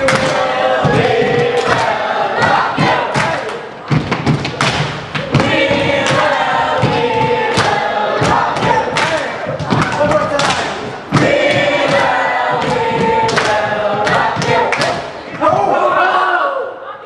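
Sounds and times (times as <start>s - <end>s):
hand clapping: 0.0s - 15.2s.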